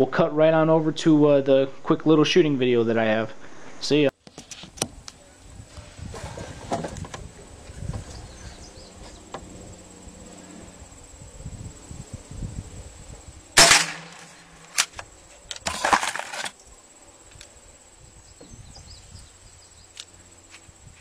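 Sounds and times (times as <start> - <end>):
handling knocks and rustles: 5.7 - 8.2, 13.6 - 16.6
rifle shot: 13.6 - 14.9.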